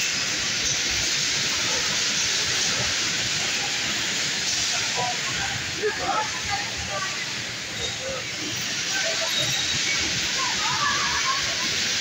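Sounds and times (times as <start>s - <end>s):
loud steady hiss: 0.0s - 12.0s.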